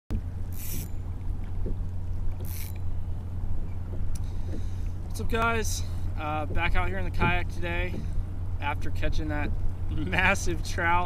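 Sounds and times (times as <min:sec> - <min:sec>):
wind buffeting microphone: 0:00.1 - 0:10.7
choppy water around hull: 0:00.1 - 0:11.0.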